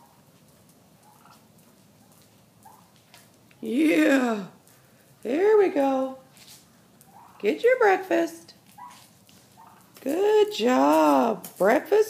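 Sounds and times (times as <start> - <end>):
wild turkeys calling: 0.0 - 3.3, 6.8 - 7.8, 8.5 - 11.2.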